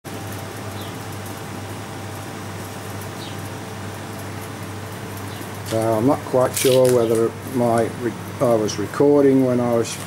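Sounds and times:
background hum and hiss: 0.1s - 10.0s.

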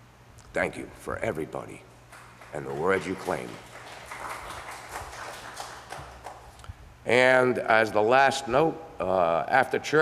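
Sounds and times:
scattered clapping: 2.1s - 6.7s.

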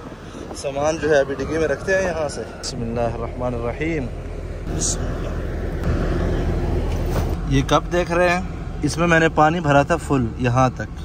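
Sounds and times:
vehicle motor rumbling: 0.0s - 11.0s.

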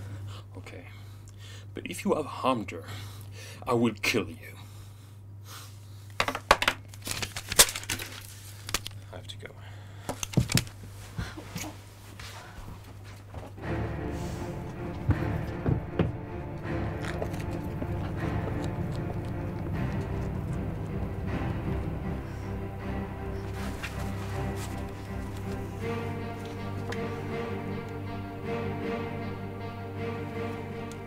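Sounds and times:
low steady hum: 0.0s - 6.2s, 6.8s - 31.0s
background music: 13.5s - 31.0s
sharp knocks and thuds: 15.0s - 16.2s.

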